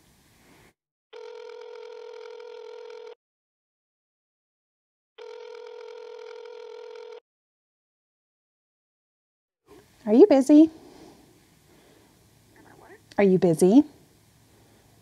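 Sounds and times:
telephone ringback tone: 0:01.2 - 0:03.2, 0:05.2 - 0:07.2.

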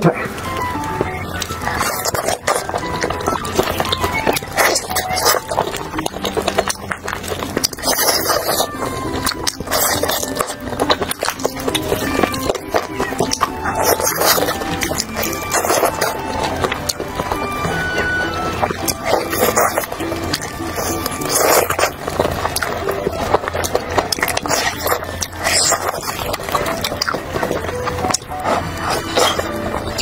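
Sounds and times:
background music: 0:00.0 - 0:30.0
chewing clicks and smacks: 0:00.4 - 0:30.0.

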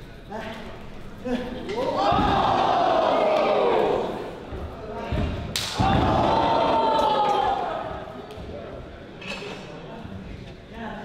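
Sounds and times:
crowd voices: 0:00.8 - 0:11.0.

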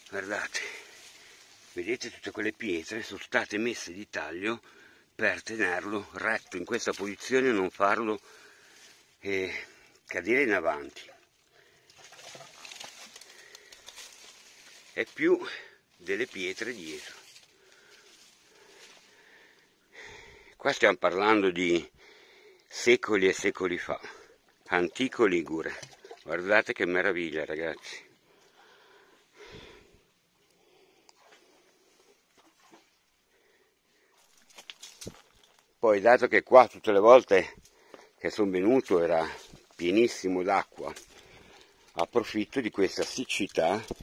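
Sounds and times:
dry leaves rustling: 0:00.0 - 0:01.8, 0:12.0 - 0:15.2, 0:16.0 - 0:19.1, 0:34.2 - 0:35.6
faint clicks and rustles: 0:11.3 - 0:15.2, 0:34.2 - 0:35.8.

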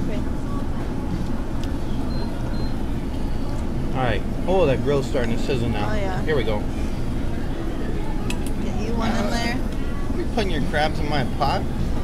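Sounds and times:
exhaust hoods humming: 0:00.0 - 0:12.0
restaurant room noise: 0:00.0 - 0:12.0
short high beeps: 0:02.1 - 0:03.4.

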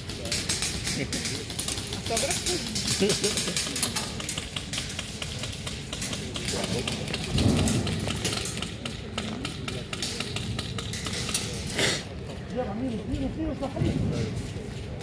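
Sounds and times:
airsoft guns firing: 0:00.3 - 0:11.7.

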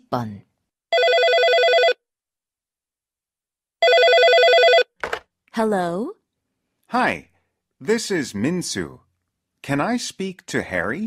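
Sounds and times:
telephone ringing: 0:00.9 - 0:02.0, 0:03.8 - 0:05.1.

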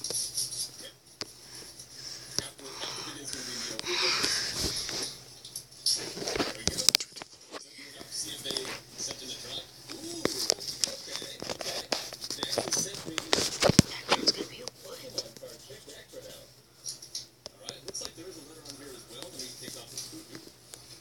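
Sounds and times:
low voices whispering: 0:02.0 - 0:05.2, 0:07.6 - 0:16.6.

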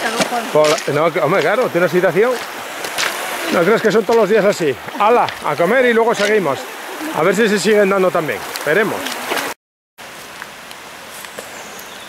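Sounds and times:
water rushing over stones: 0:00.0 - 0:12.0.

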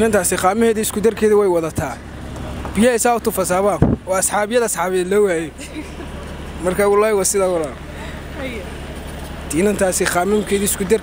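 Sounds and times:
street traffic hum: 0:00.0 - 0:11.0.

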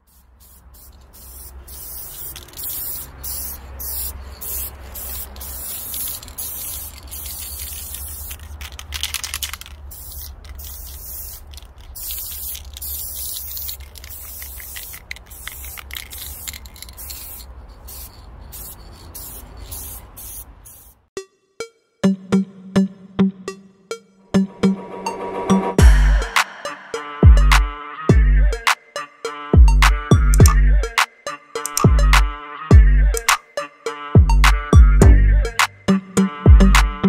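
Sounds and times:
spray paint can hissing: 0:00.0 - 0:21.1, 0:31.6 - 0:31.9
low rumble: 0:24.7 - 0:28.4.

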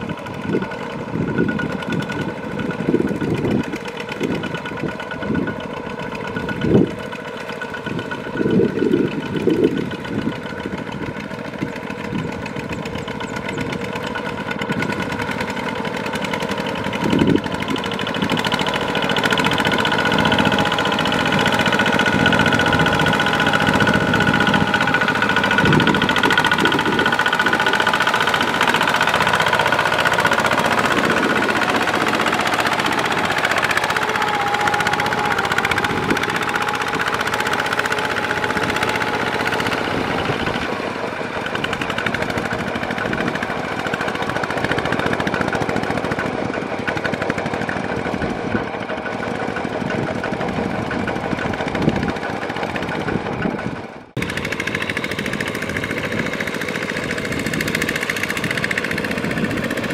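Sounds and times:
diesel engine under load: 0:00.0 - 0:59.9.

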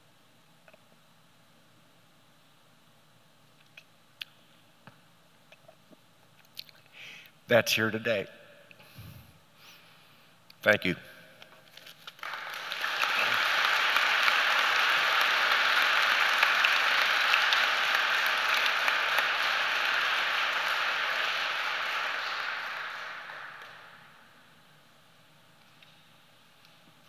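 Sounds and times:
audience applauding: 0:12.0 - 0:24.4.

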